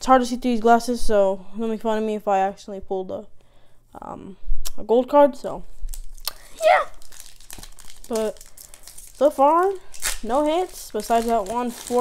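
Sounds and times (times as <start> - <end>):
foil wrapper tearing and crinkling: 5.9 - 12.0.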